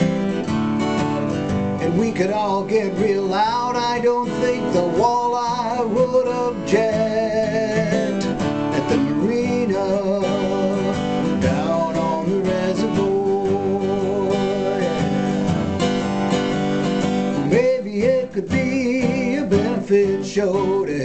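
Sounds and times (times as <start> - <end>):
acoustic guitar strumming: 0.0 - 21.0
man singing: 1.2 - 15.8, 17.1 - 21.0.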